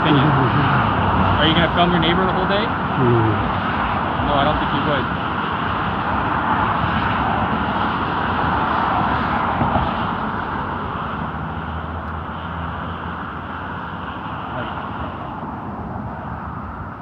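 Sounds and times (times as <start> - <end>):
vehicle tyre and engine noise: 0.0 - 17.0.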